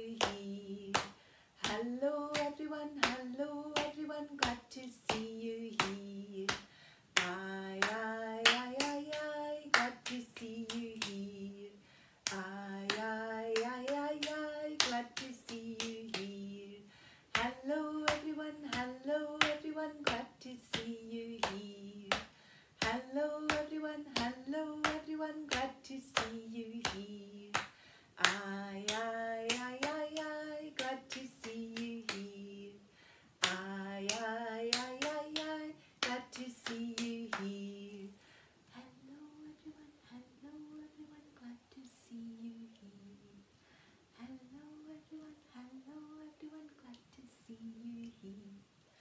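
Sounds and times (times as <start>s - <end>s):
woman singing: 0.0s - 43.4s, 44.1s - 48.6s
hands clapping: 0.2s - 11.2s, 12.2s - 16.3s, 17.4s - 32.3s, 33.4s - 37.6s.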